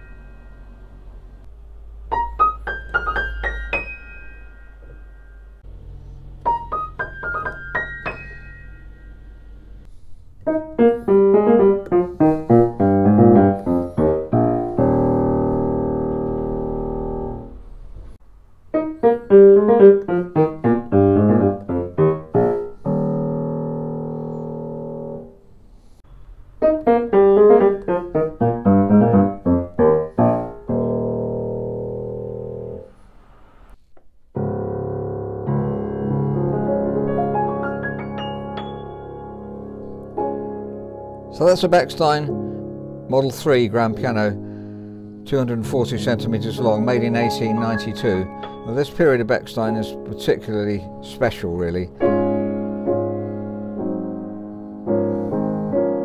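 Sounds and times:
grand piano played gently: 2.0s - 9.8s, 10.4s - 25.4s, 26.6s - 33.0s, 34.4s - 56.0s.

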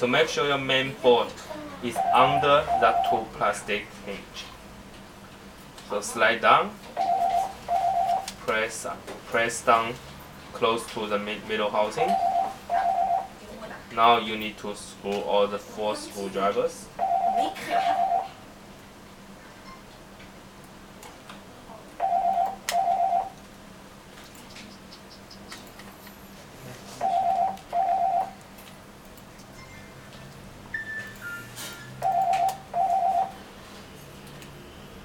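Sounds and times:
electronic short beeps: 30.7s - 33.3s.

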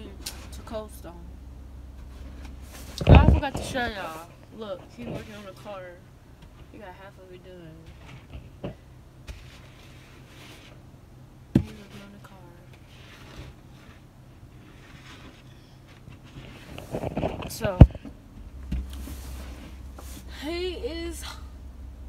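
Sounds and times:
low steady hum: 0.0s - 22.0s
snow brush scraping windshield: 2.2s - 4.4s, 5.0s - 5.8s, 9.3s - 10.8s, 12.8s - 17.8s, 18.9s - 20.5s.

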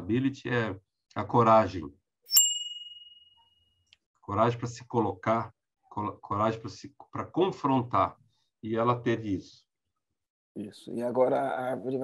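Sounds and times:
bright bell-like ding: 2.3s - 3.4s.

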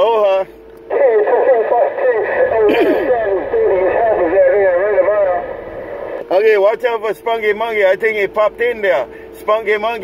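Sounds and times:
radio static hiss: 0.3s - 6.5s
voice over radio: 0.9s - 6.4s.

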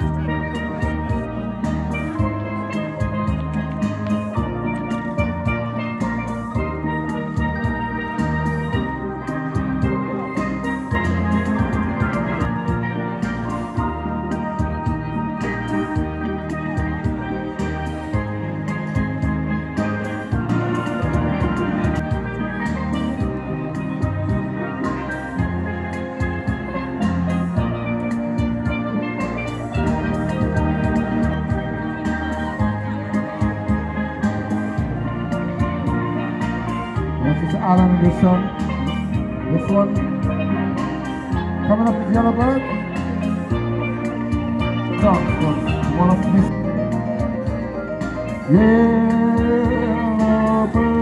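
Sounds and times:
steel drum band playing: 0.0s - 51.0s.

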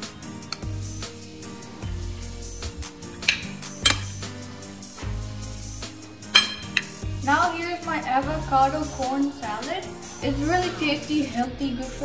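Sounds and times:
background music: 0.0s - 12.0s
metal spoon clinking on ceramic: 6.4s - 6.9s.

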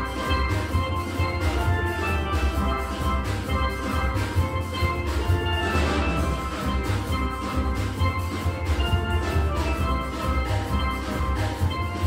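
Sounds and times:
low bass line: 0.0s - 12.0s
steel band playing: 0.0s - 12.0s.

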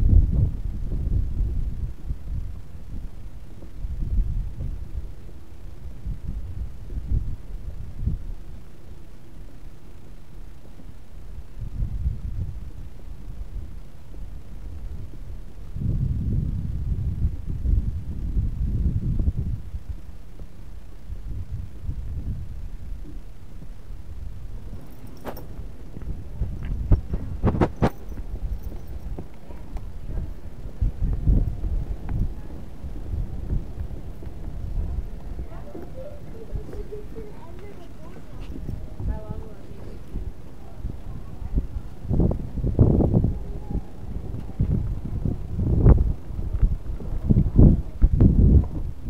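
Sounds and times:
wind rumbling on microphone: 0.0s - 49.0s.

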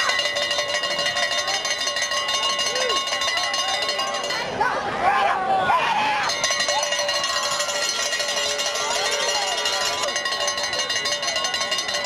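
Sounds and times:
cowbell rung rapidly: 0.0s - 4.7s, 6.2s - 12.0s
crowd voices: 0.0s - 12.0s.

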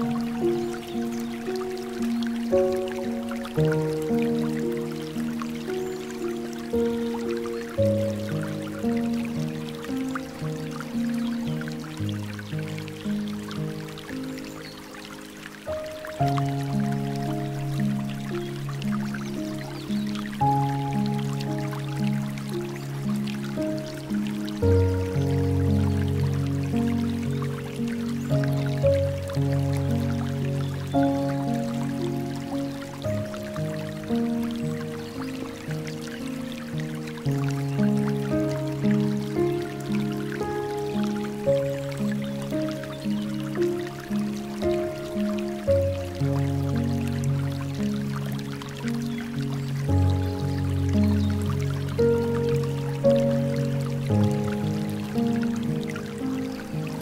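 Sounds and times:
slow soft piano music: 0.0s - 57.0s
trickling dripping water: 0.0s - 57.0s.

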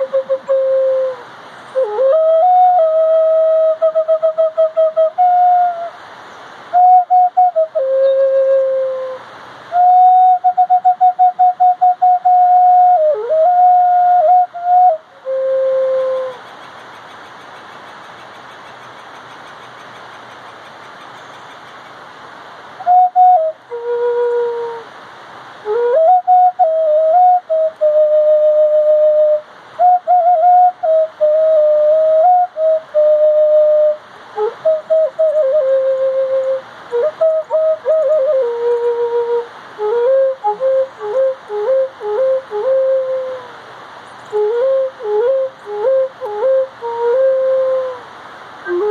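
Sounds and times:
flute playing slow melody: 0.0s - 6.0s, 6.7s - 16.4s, 22.8s - 24.9s, 25.6s - 48.9s
steady background hiss: 0.0s - 48.9s.

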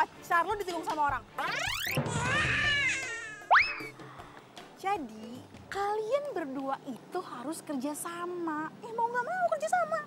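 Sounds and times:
wavering cartoon tone: 1.4s - 3.9s.

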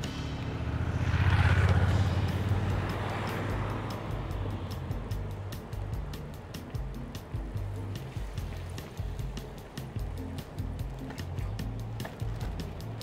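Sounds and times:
music with steady beat: 0.0s - 1.0s, 1.6s - 13.0s
motorcycle passing by: 0.0s - 9.2s.

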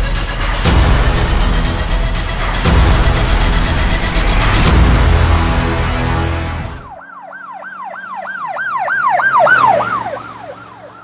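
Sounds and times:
low hum: 0.0s - 7.0s
electronic siren yelping: 6.9s - 11.0s.

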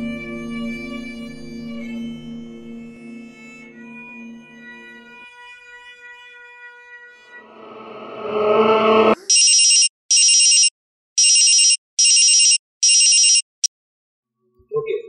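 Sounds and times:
music drone with rising rush: 7.2s - 9.2s
mobile phone ringing: 9.3s - 13.5s.

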